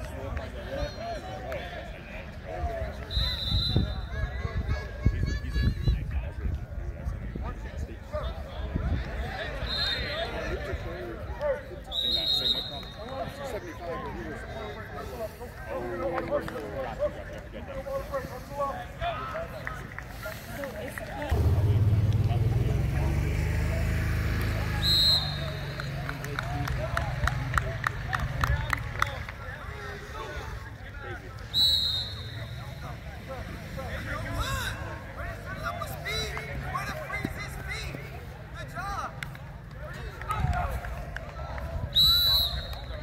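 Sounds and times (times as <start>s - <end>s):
faint voices: 0.0s - 24.8s, 25.4s - 43.0s
loud whistle blast: 3.1s - 4.1s, 11.9s - 13.0s, 24.7s - 25.8s, 31.5s - 32.7s, 41.9s - 43.0s
engine droning: 21.3s - 28.2s.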